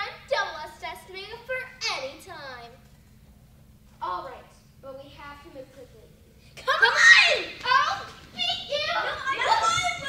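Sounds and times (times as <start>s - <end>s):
children shouting and crying out: 6.6s - 10.0s.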